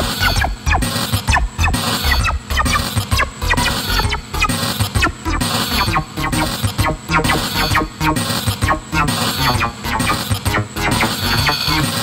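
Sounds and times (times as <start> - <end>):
distorted drum machine beat: 0.0 - 12.0
buzzing synth blips: 0.2 - 12.0.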